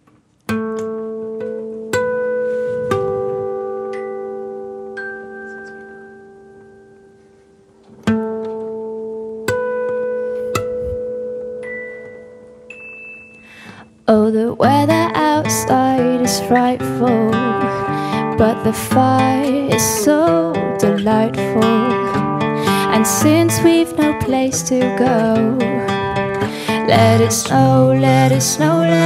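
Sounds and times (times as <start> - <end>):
acoustic guitar playing: 0.0 - 29.0.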